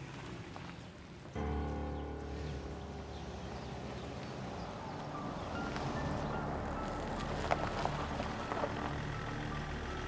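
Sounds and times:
car engine and tyres: 0.0 - 10.0
quiet background music: 0.8 - 10.0.

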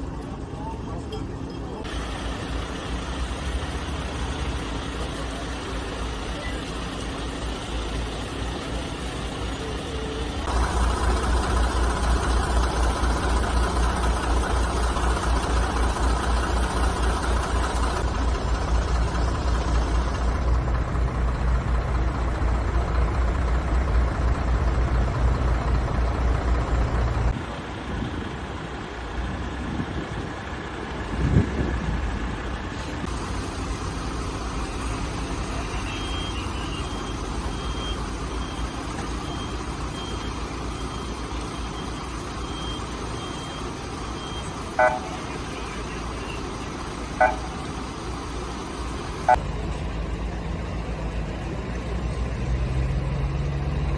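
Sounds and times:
vehicle engines idling: 0.0 - 53.9.

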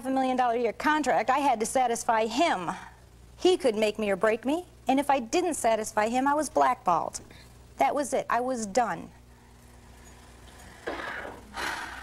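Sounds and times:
mains hum and hiss: 0.0 - 12.0.

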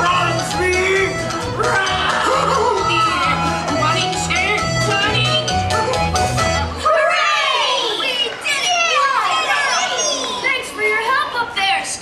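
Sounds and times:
young children shouting: 1.6 - 3.4, 6.6 - 12.0.

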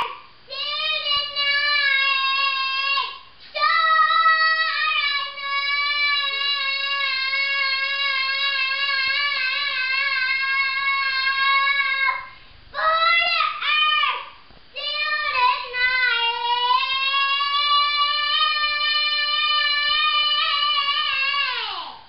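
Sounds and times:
boy singing long held notes: 0.0 - 14.2, 14.8 - 22.0.

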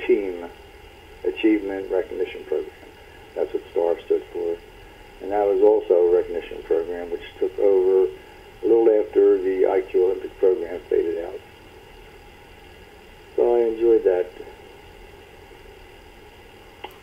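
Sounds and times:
person talking: 13.4 - 14.5.

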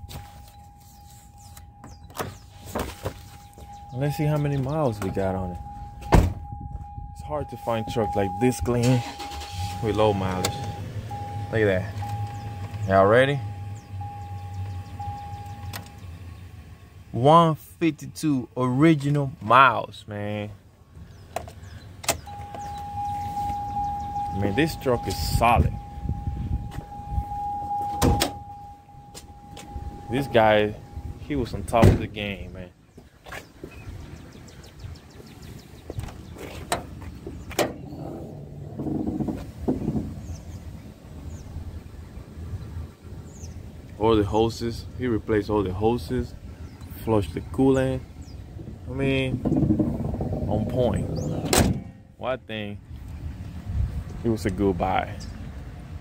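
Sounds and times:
low steady rumble: 0.0 - 19.8, 20.4 - 32.7, 36.8 - 56.0
high-pitched electronic tone: 22.3 - 31.3
low hum: 22.3 - 32.1.

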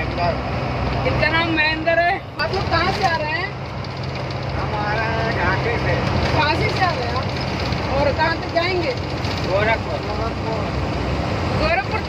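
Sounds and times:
voices: 0.0 - 10.8, 11.6 - 12.0
truck engine rumble: 0.0 - 12.0.

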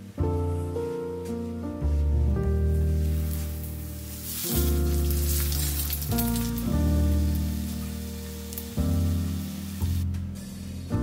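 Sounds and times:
piano music: 0.0 - 11.0
toast sizzling in frying pan: 3.0 - 10.0.

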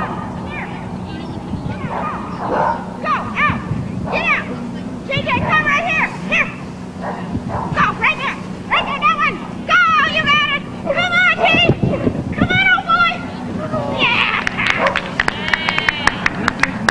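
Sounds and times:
steady low hum: 0.0 - 16.9
dog barking and yipping: 1.8 - 4.5, 5.3 - 9.4, 10.2 - 12.0, 14.7 - 15.1.

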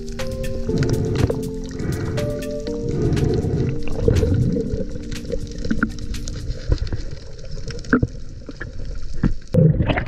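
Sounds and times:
clicks and ticks: 0.0 - 8.1
muffled underwater rumble: 0.0 - 10.0.

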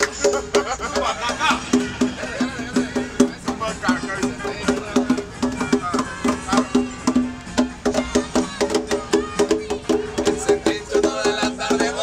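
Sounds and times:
conga drum played by hand: 0.0 - 12.0
voices talking: 0.0 - 12.0.

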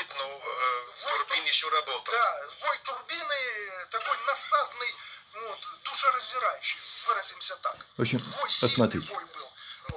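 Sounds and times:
man speaking through laptop speakers: 1.1 - 9.6.

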